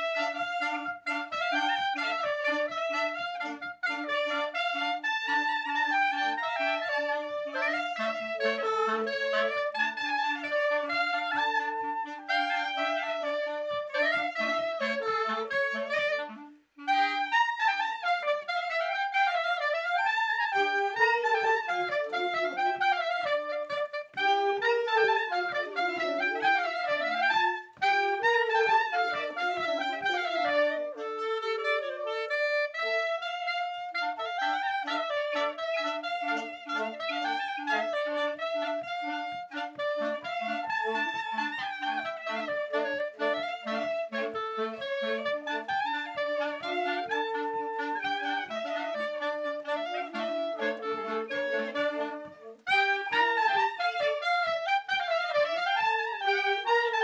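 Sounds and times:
wind ensemble playing folk tune: 0.0s - 57.0s.

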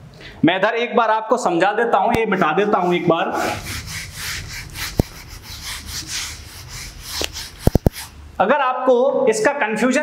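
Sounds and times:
duster wiping whiteboard: 2.1s - 8.2s.

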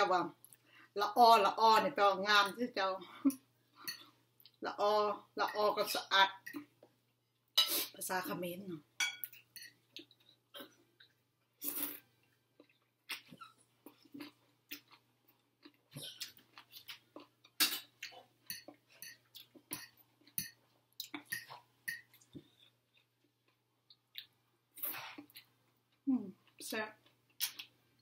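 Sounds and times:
person chewing food: 9.4s - 28.0s.

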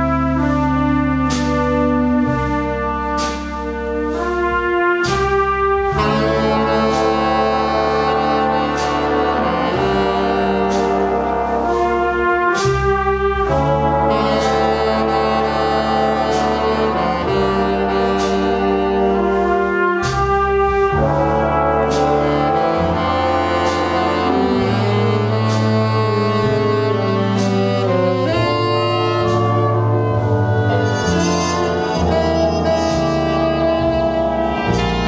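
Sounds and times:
jazz big band ballad: 0.0s - 35.0s.

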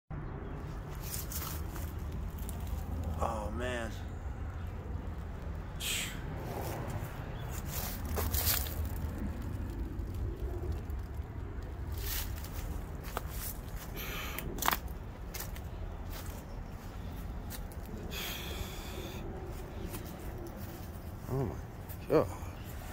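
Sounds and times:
steady low rumble: 0.2s - 22.9s
footsteps crunching dry leaves: 0.6s - 3.2s, 6.4s - 22.0s.

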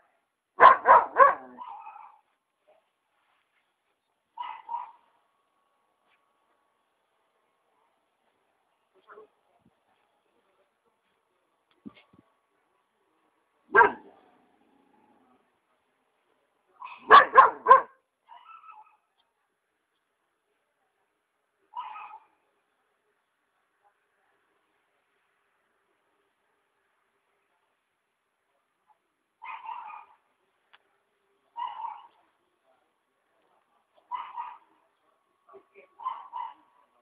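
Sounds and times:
bark-like animal call: 0.6s - 2.2s, 21.7s - 22.3s, 29.4s - 30.2s, 34.1s - 34.7s, 36.0s - 36.7s.

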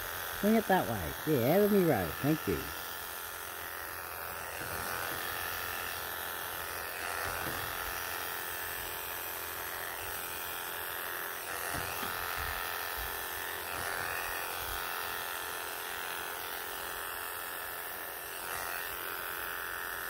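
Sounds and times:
electric clippers buzzing: 0.0s - 20.0s.

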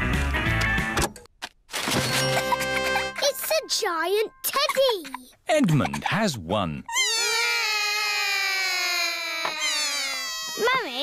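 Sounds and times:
cartoon children crying: 6.9s - 11.0s.

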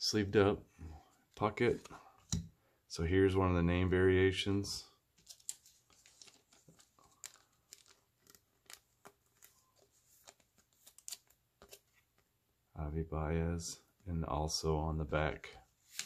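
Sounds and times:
trading cards handled in plastic sleeve: 5.1s - 12.3s.

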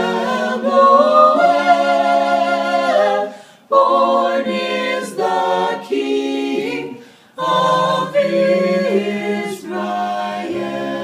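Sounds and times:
vocal quartet singing a cappella: 0.0s - 11.0s.

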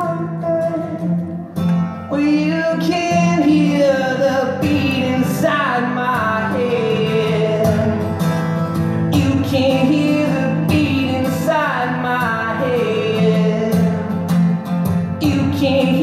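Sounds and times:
person singing: 0.0s - 1.4s, 2.1s - 8.2s, 9.1s - 14.1s, 15.2s - 16.0s
acoustic guitar: 0.0s - 16.0s.

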